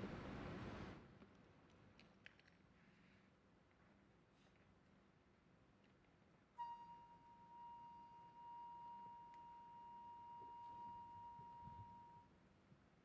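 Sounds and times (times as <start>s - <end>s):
high sustained instrument note: 6.6s - 12.3s.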